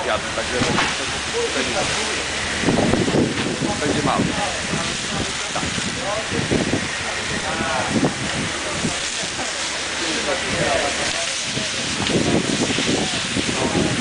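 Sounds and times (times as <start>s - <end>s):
people talking: 0.0s - 14.0s
steady hiss: 0.0s - 14.0s.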